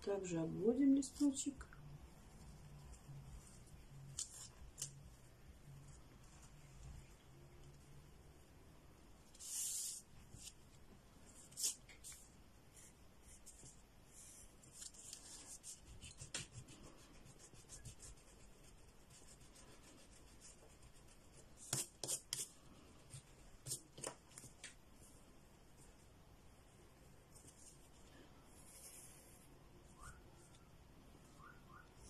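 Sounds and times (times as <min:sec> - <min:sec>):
pencil strokes on paper: 0:09.2 - 0:26.1, 0:27.3 - 0:32.0.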